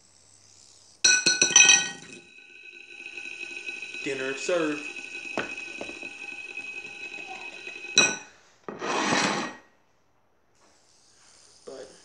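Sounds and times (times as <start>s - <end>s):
fidget spinner ringing hum: 0.0s - 8.4s, 10.6s - 12.0s
scraping rub: 1.4s - 9.6s.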